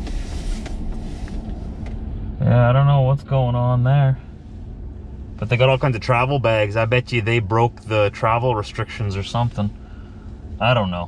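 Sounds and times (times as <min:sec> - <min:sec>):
car idling: 0:00.0 - 0:11.0.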